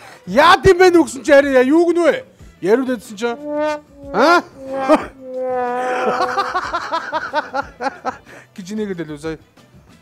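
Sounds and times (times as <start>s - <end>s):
person wailing: 3.4s - 6.9s.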